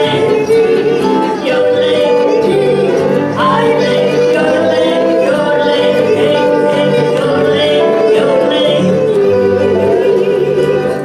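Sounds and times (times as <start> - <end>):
acoustic guitar: 0.0 - 11.0
women singing country song: 0.0 - 11.0.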